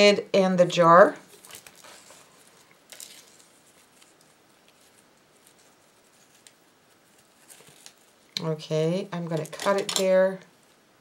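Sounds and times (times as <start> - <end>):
ribbon rustling on glass jar: 1.3 - 8.3.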